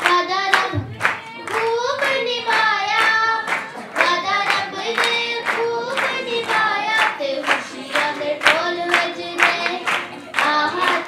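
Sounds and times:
children singing in unison: 0.0 - 11.0
hand clapping on the beat: 0.0 - 11.0.

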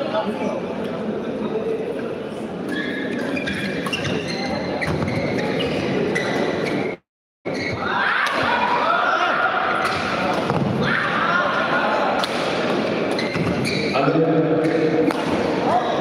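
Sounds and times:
crowd voices and calls: 0.0 - 16.0
rackets hitting shuttlecock: 12.2 - 13.6, 14.6 - 15.5.

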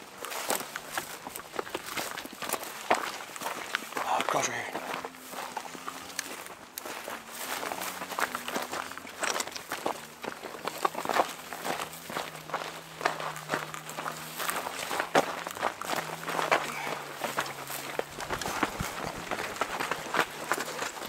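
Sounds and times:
footsteps crunching on rocky ground: 0.0 - 21.0.

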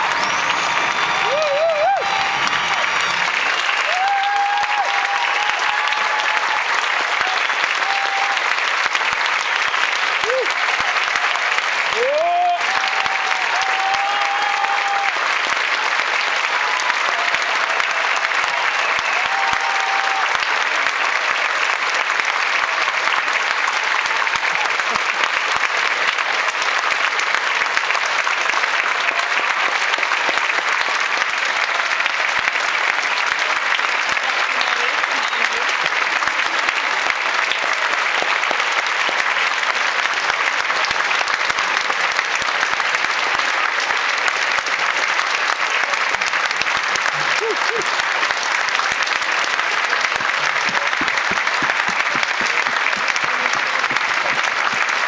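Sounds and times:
large audience applauding: 0.0 - 55.0.

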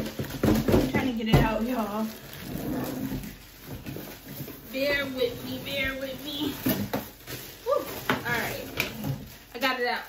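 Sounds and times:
plastic wrapping rustling: 0.0 - 10.0
cardboard box rustling and scraping: 1.5 - 9.3.

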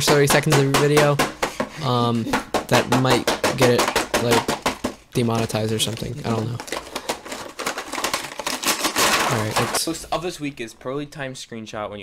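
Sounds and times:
computer keyboard clatter: 2.6 - 9.8.

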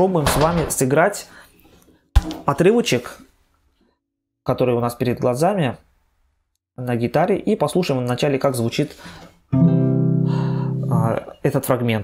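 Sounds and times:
acoustic guitar chord ringing: 9.5 - 11.1.

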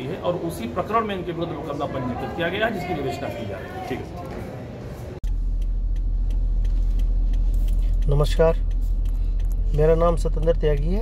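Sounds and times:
low rumble inside car cabin: 5.2 - 11.0
man talking: 8.0 - 8.6, 9.7 - 11.0.

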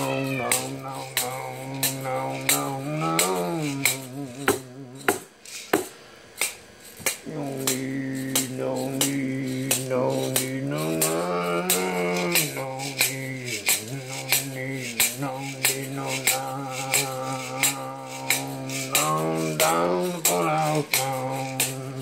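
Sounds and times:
man chanting held notes: 0.0 - 5.4, 7.1 - 22.0.

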